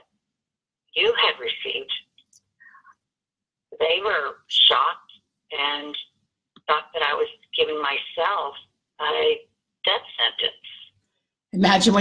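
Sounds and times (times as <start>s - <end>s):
woman speaking over telephone: 0.9s - 2.1s, 3.7s - 11.0s.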